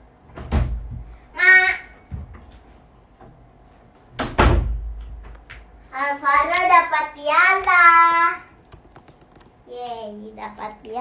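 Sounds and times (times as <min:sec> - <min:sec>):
door banging: 0:00.3 - 0:01.1, 0:04.2 - 0:05.4.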